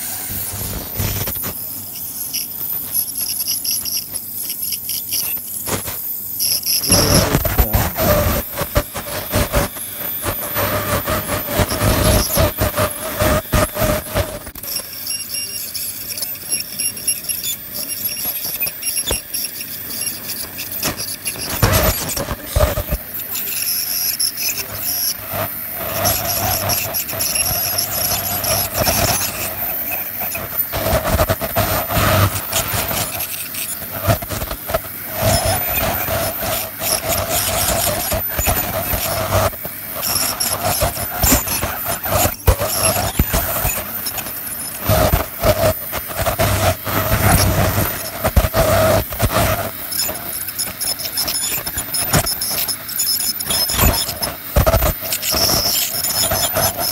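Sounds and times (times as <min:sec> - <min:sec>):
dental scaler whining: 0:00.0 - 0:56.9
scaler tip scraping teeth: 0:00.0 - 0:56.9.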